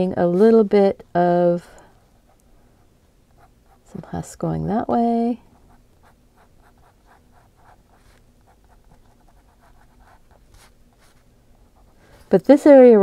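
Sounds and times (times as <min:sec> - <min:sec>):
pen scratching on paper: 0:05.6 - 0:11.9.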